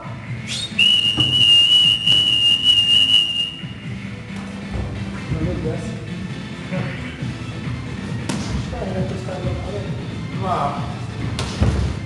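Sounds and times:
long whistle blast: 0.5 - 3.8.

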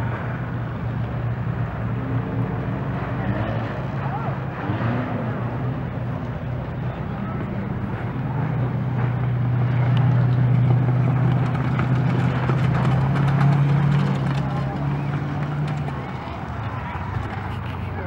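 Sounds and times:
car engine passing: 0.0 - 18.0.

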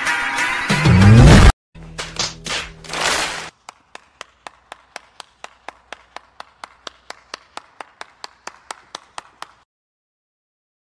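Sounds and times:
person clapping: 2.0 - 9.7.

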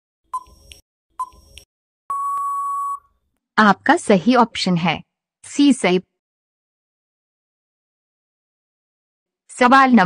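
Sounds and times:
long steady beep: 2.1 - 3.1
short beep: 2.1 - 3.1.

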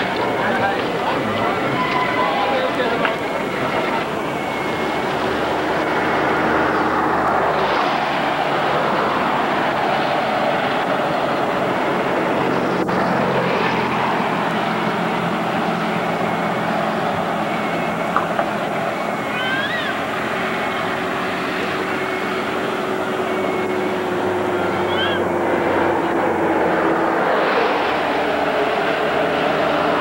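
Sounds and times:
vehicle running noise: 0.0 - 30.0.

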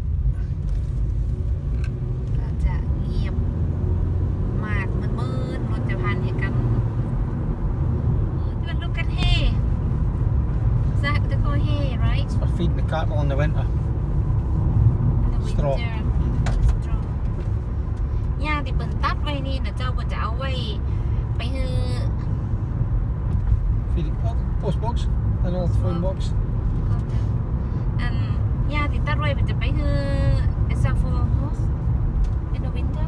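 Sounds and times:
car road and engine rumble: 0.0 - 33.0.

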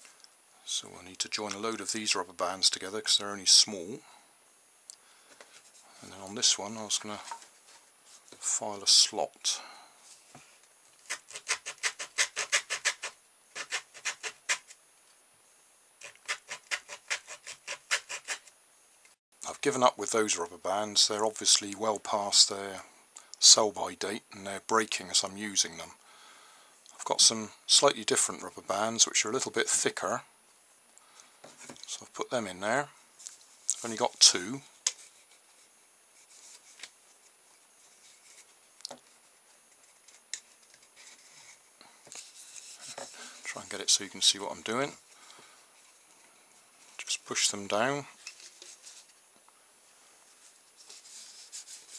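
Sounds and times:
hacksaw sawing cardboard tube: 11.0 - 14.7, 16.0 - 18.5.

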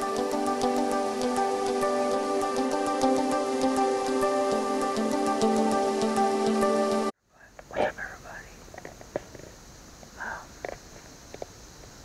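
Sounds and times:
man whispering: 7.2 - 8.7, 10.2 - 10.7
small clicks: 8.8 - 11.6.

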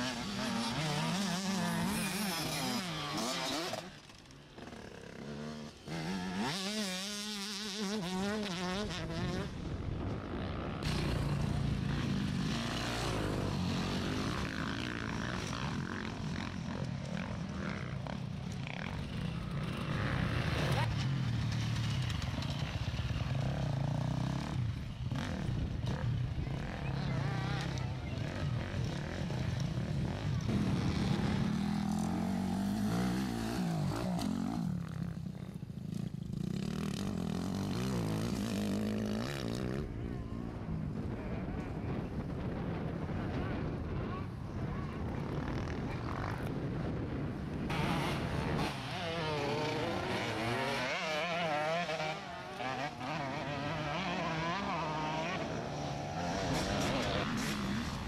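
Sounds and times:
motorcycle engines revving: 0.0 - 58.0.

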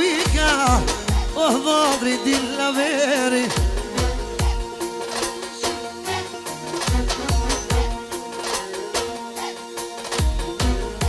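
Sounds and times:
band music with held notes: 0.0 - 11.0.

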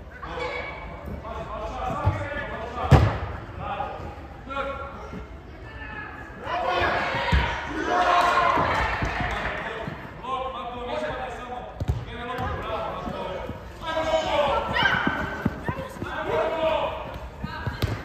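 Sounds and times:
voices calling and shouting: 12.4 - 18.0.

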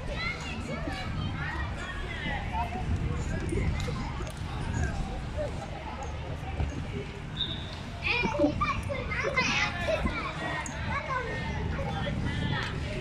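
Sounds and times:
children shouting and calling: 0.0 - 2.4, 8.0 - 12.6.

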